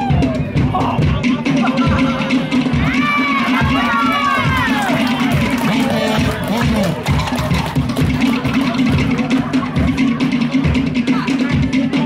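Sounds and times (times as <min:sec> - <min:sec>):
drums beating steadily: 0:00.0 - 0:12.0.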